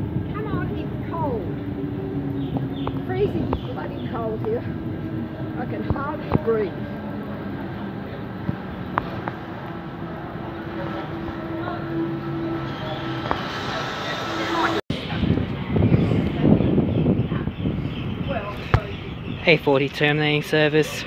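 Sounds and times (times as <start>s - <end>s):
electric train motors humming: 0.0s - 14.8s
faint voices: 0.0s - 21.0s.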